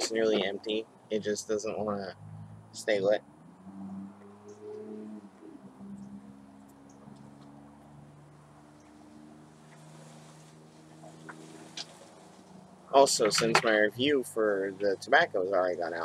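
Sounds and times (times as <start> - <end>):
steady low hum: 0.0 - 3.5.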